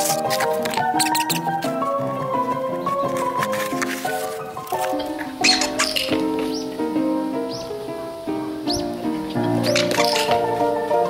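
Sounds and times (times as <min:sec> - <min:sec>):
squeaker toy squeaking: 0:00.0 - 0:01.5.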